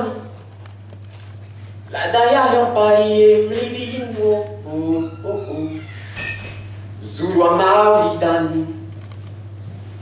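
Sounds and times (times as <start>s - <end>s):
man chanting wordless notes: 1.9s - 5.8s.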